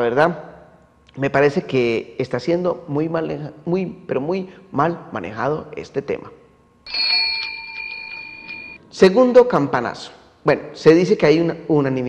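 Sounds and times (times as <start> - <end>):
struck bell ringing: 6.9 - 8.8.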